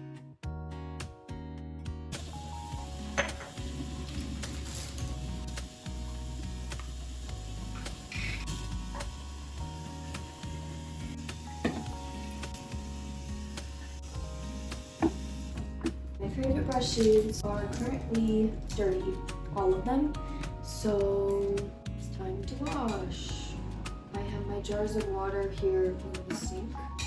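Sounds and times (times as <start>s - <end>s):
background music with bass line: 0.0s - 27.0s.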